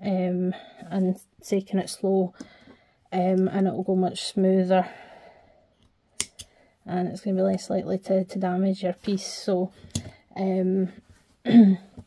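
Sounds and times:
snips cutting yarn: 0:06.2 - 0:06.5.

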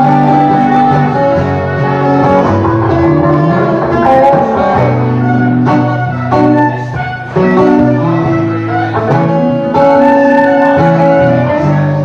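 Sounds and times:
acoustic guitar strumming: 0:00.0 - 0:12.0
electric guitar lead notes: 0:00.0 - 0:12.0.

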